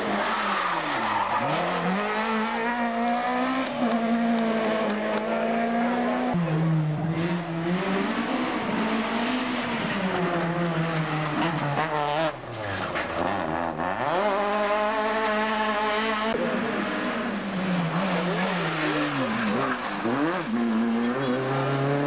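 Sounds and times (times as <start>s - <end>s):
rally car engines revving: 0.0s - 22.0s.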